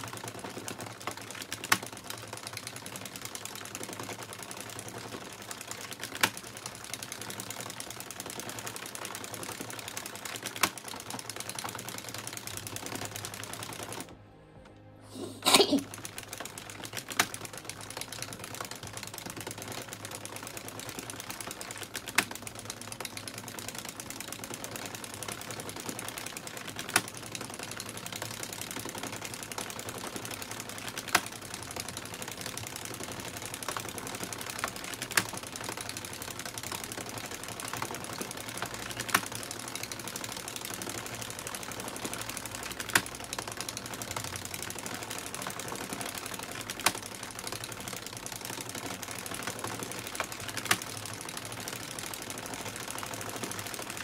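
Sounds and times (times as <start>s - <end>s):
knitting machine clattering: 0.0s - 14.2s, 15.4s - 54.0s
knitting machine click: 15.4s - 54.0s.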